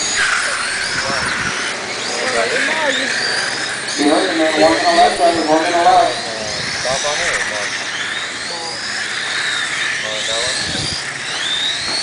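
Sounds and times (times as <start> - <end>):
steady rushing noise: 0.0 - 11.3
model car motors whining: 0.0 - 12.0.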